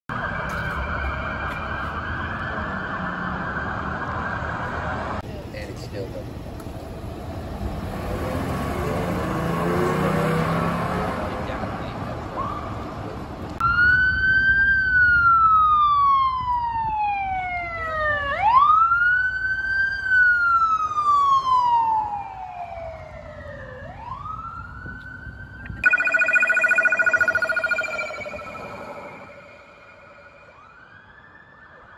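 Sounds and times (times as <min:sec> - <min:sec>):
police siren wailing: 0:00.1 - 0:05.2, 0:13.6 - 0:31.9
street traffic: 0:00.1 - 0:31.9
rapid pulsing siren: 0:13.6 - 0:31.9.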